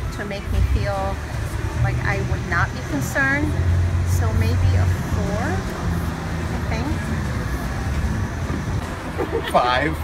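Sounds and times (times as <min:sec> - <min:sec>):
vehicle engines rumbling: 0:00.0 - 0:10.0.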